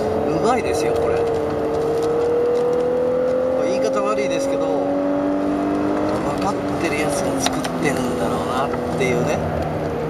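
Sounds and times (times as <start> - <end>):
car engine pulling under load: 0.0 - 10.0
road noise: 0.0 - 10.0.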